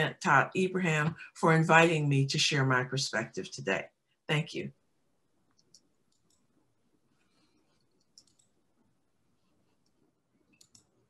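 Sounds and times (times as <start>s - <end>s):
soft clicks: 5.5s - 6.5s, 7.7s - 8.6s, 9.7s - 11.0s.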